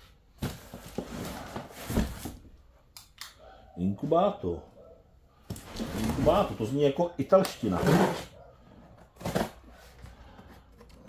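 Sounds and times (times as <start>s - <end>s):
cardboard carton rustling: 0.4s - 2.5s, 5.6s - 6.7s, 8.9s - 11.0s.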